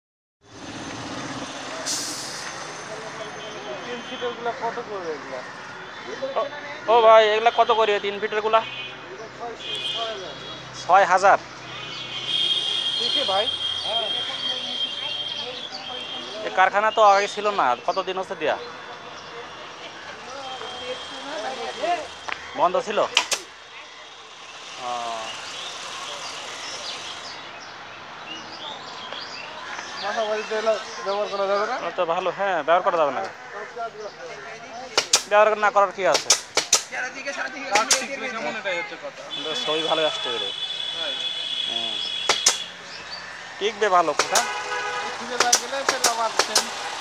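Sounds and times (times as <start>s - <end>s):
outdoor background noise: 0.4s - 47.0s
street noise: 0.4s - 47.0s
short sharp hiss: 1.8s - 2.6s
faint voices: 13.8s - 27.4s.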